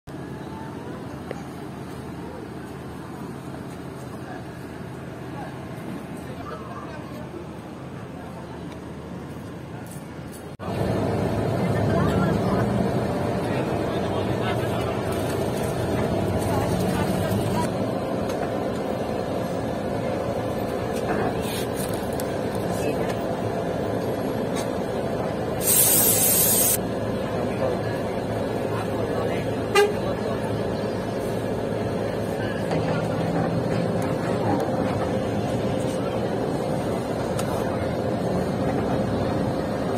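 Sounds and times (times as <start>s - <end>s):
faint distant voices: 0.1s - 10.6s
bus rumbling while driving: 0.1s - 39.9s
vehicle engines idling: 0.1s - 39.9s
compressed air hiss: 25.6s - 26.8s.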